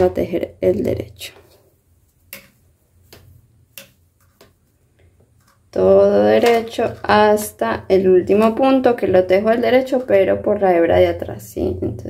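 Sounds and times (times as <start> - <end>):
knitting needles clicking: 2.3 - 4.6.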